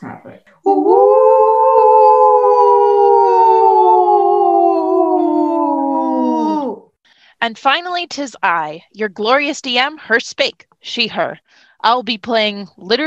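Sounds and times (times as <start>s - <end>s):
person howling ghostly: 0.6s - 7.0s.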